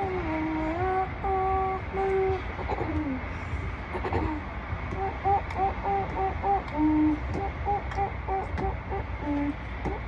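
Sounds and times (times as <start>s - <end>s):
child humming: 0.0s - 3.2s, 4.0s - 10.0s
steady low rumble: 0.0s - 10.0s.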